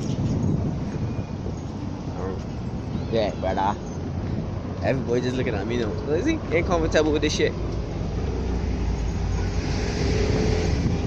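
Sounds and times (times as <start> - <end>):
cars driving past: 3.6 - 11.0.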